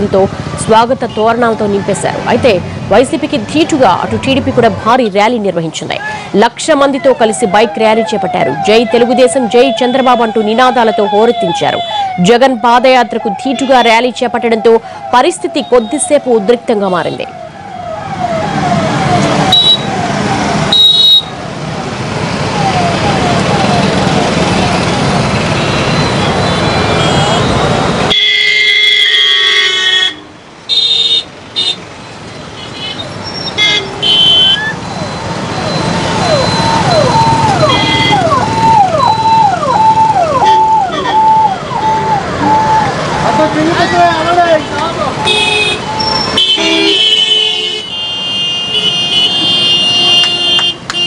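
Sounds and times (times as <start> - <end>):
traffic noise: 0.0 - 51.0
siren wailing: 6.8 - 21.3, 22.3 - 27.8, 34.3 - 46.3
siren whooping: 6.9 - 20.8, 22.4 - 27.8, 34.5 - 46.3
vehicle horn toots: 25.6 - 31.8, 32.6 - 34.7, 45.2 - 51.0.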